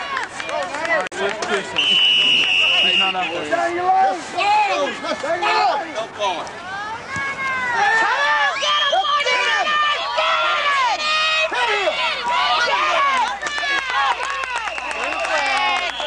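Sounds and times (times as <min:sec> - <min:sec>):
crowd yelling and cheering: 0:00.0 - 0:16.0.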